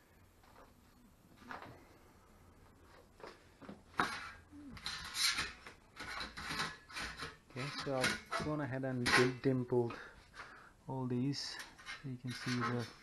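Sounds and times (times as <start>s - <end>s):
scraping and rattling: 3.9s - 10.1s, 11.4s - 13.0s.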